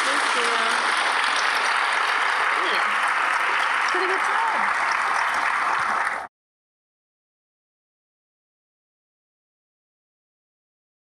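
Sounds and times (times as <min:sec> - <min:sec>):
audience applauding: 0:00.0 - 0:06.3.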